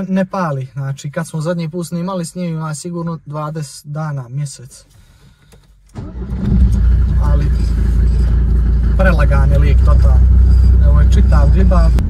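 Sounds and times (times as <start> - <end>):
diesel engine starting and idling: 5.9 - 12.0.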